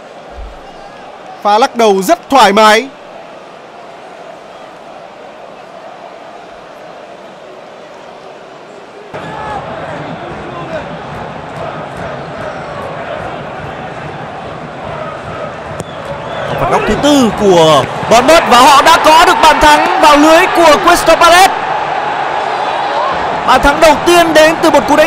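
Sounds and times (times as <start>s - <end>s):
crowd shouts and chanting: 0.0s - 25.0s
stadium crowd noise: 0.0s - 25.0s.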